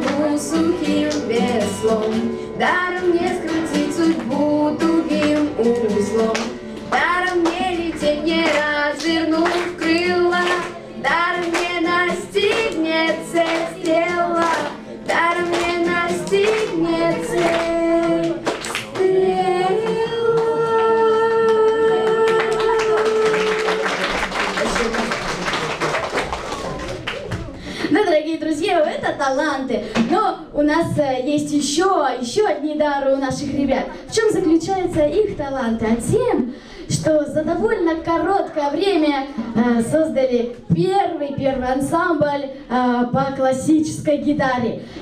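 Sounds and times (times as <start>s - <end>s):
girls singing into microphones: 0.0s - 23.7s
acoustic guitar: 0.0s - 45.0s
audience applause: 13.4s - 19.2s, 20.3s - 27.7s.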